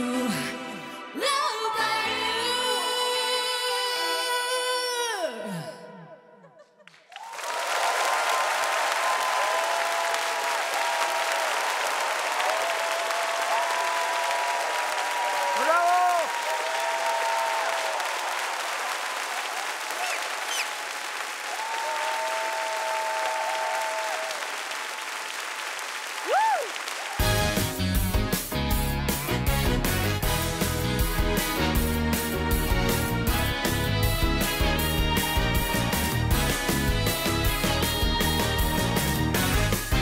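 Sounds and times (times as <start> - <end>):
audience applauding and cheering: 6.9 - 40.0.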